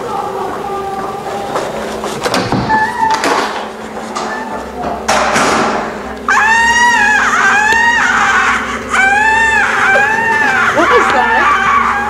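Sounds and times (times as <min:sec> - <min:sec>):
noisy thud: 0:05.0 - 0:06.0
shrill human screams: 0:06.3 - 0:12.0.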